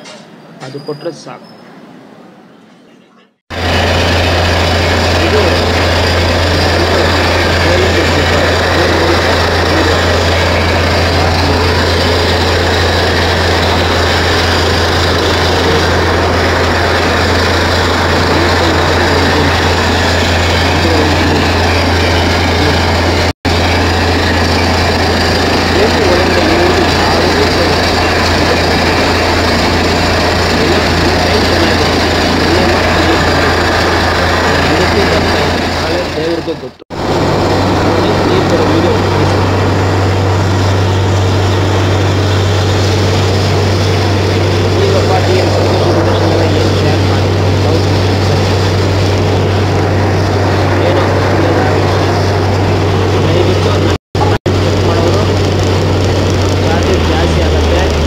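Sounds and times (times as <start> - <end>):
constant low hum: 2.6 - 58.0
drilling rig engine running: 3.5 - 58.0.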